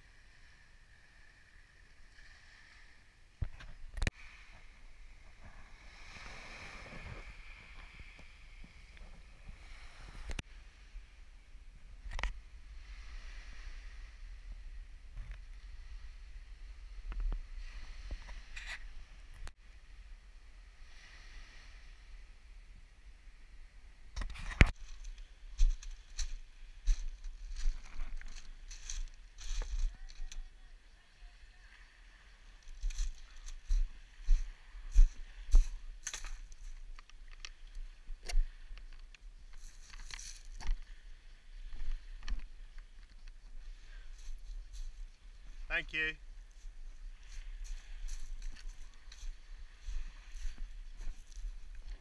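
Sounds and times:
footsteps crunching on pebbles: 0:24.7 - 0:30.3, 0:32.7 - 0:36.8.

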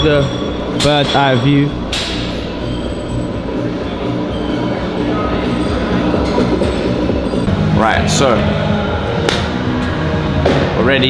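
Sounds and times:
gym hall din: 0:00.0 - 0:11.0
music playing: 0:00.0 - 0:11.0.

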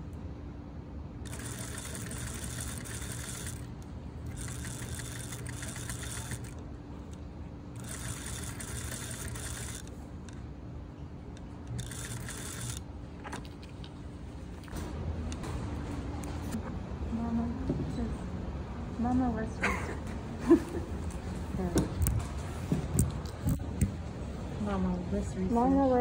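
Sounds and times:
steady low hum: 0:00.0 - 0:26.0
sewing machine stitching denim: 0:01.3 - 0:03.7, 0:04.3 - 0:06.6, 0:07.8 - 0:09.9, 0:11.7 - 0:12.8.

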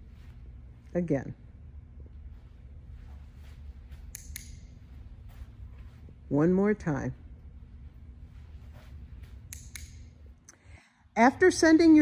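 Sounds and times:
tagger clicking: 0:04.0 - 0:04.8, 0:09.3 - 0:10.2.

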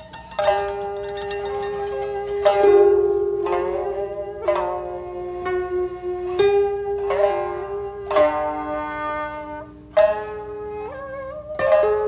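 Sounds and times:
koto and shamisen playing: 0:00.0 - 0:12.0
plucked string note ringing: 0:00.0 - 0:12.0.

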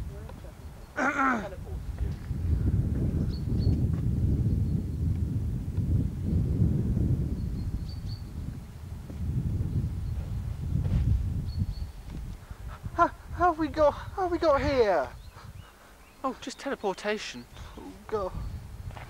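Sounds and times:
wind buffeting microphone: 0:00.0 - 0:16.5, 0:17.4 - 0:19.0.

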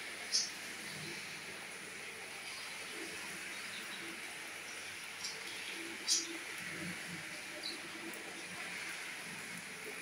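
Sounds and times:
light rain falling: 0:00.0 - 0:10.0.

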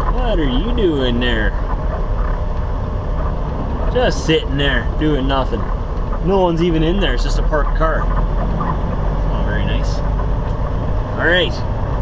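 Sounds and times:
diesel truck engine rumble: 0:00.0 - 0:12.0.

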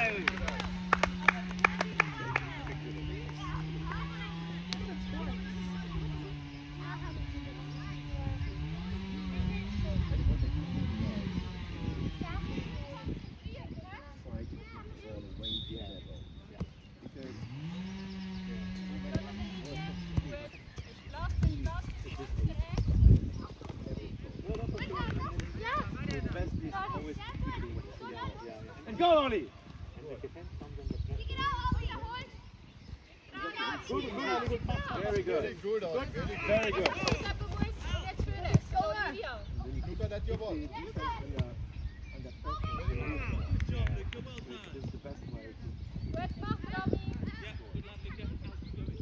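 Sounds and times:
voices calling out: 0:31.1 - 0:44.6.

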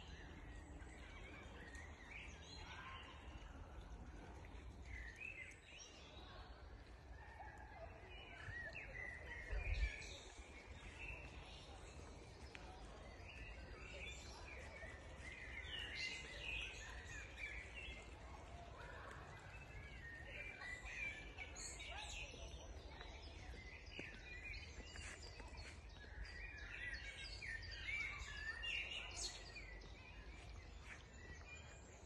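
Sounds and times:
songbirds singing: 0:00.0 - 0:32.0.

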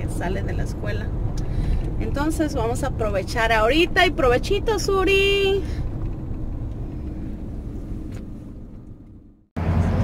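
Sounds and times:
vehicle rumble inside cabin: 0:00.0 - 0:10.0.

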